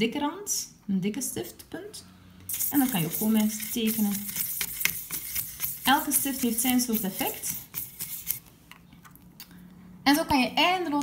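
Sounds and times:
marker scratching on paper: 0:02.5 - 0:08.5.

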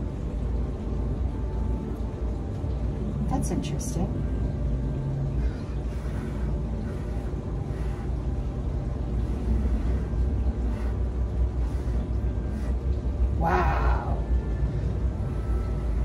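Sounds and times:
faint steady tones: 0:00.0 - 0:16.0
steady low rumble: 0:00.0 - 0:16.0.

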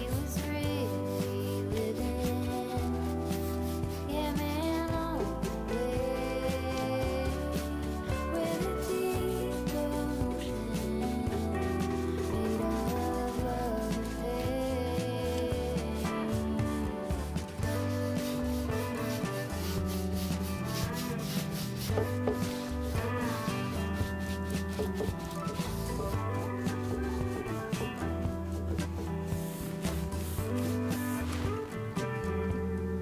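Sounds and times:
brush scrubbing on wood: 0:00.0 - 0:32.5
background music: 0:00.0 - 0:33.0.

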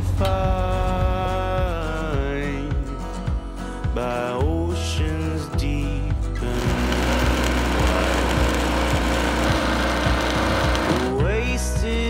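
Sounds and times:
person singing: 0:00.0 - 0:03.2, 0:03.9 - 0:12.0
country music: 0:00.0 - 0:12.0
arc welding crackling: 0:06.4 - 0:11.2.

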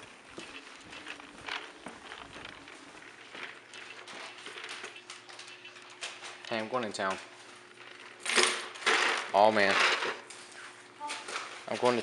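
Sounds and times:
footsteps on hardwood floor: 0:00.0 - 0:05.0
faint steady hum: 0:00.0 - 0:12.0.

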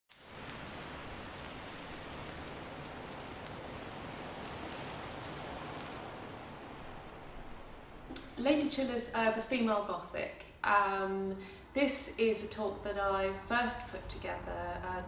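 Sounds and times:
steady hiss of noise: 0:00.1 - 0:15.0.

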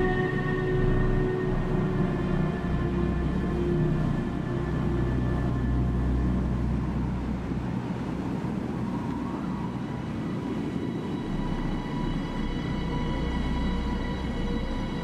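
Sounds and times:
low rumbling drone: 0:00.0 - 0:15.0
thin sustained high tones: 0:00.0 - 0:15.0.

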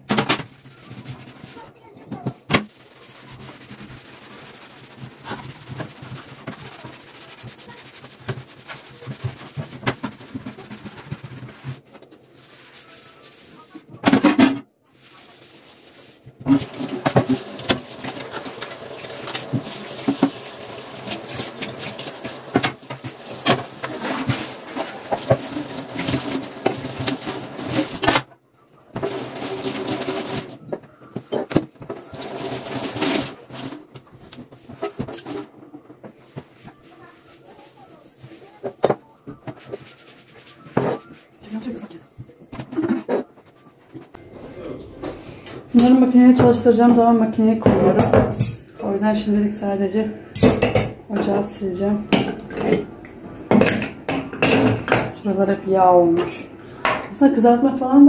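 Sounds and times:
pan scrubbed in sink: 0:00.0 - 0:28.2, 0:28.9 - 0:30.6, 0:31.3 - 0:35.5, 0:44.2 - 0:49.7
tap water running: 0:00.6 - 0:11.8, 0:16.3 - 0:28.1, 0:28.9 - 0:30.8, 0:31.4 - 0:35.5
knocks and clatter against sink: 0:16.4 - 0:28.3, 0:45.8 - 0:48.6, 0:50.4 - 0:51.5, 0:52.1 - 0:55.2.

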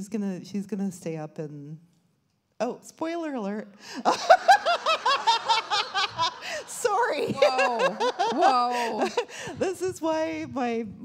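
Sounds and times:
woman laughing into microphone: 0:04.0 - 0:09.6.

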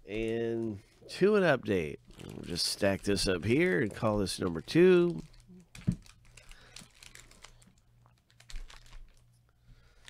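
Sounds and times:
foil packs crinkling: 0:00.0 - 0:10.0.

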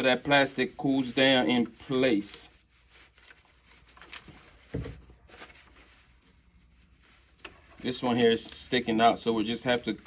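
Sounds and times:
cloth rubbing on plastic: 0:00.0 - 0:10.0
soft thump: 0:04.7 - 0:05.0.

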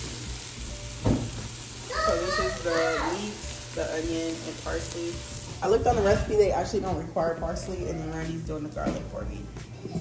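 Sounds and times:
leeks sizzling in oil: 0:00.0 - 0:09.5
child's high voice: 0:01.8 - 0:03.3.

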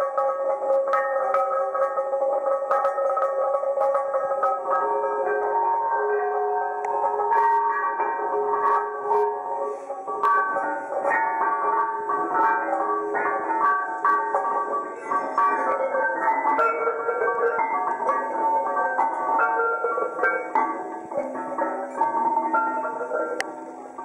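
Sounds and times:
slate sculpture ringing tones: 0:00.0 - 0:24.0
stone lithophone melody: 0:00.0 - 0:24.0.

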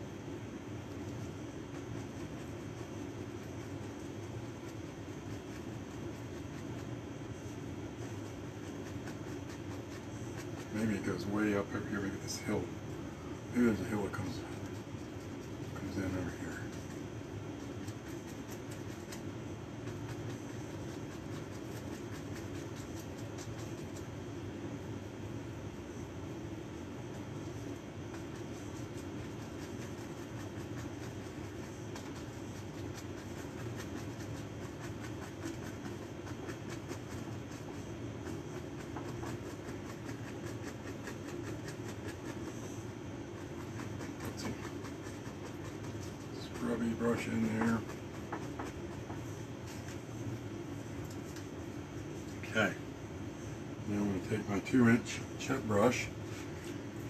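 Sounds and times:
low rumbling background noise: 0:00.0 - 0:57.0
paintbrush scratching on canvas: 0:00.6 - 0:24.8, 0:25.9 - 0:57.0.

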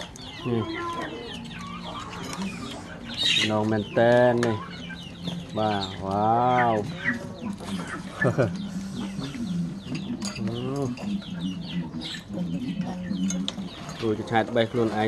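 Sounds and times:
chickens clucking: 0:00.0 - 0:15.0.

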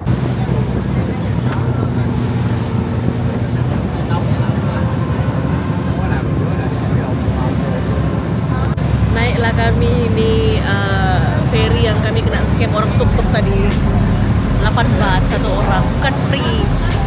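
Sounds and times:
churning wake water: 0:00.0 - 0:17.0
ferry engine running: 0:00.0 - 0:17.0
wind on microphone: 0:00.0 - 0:17.0.

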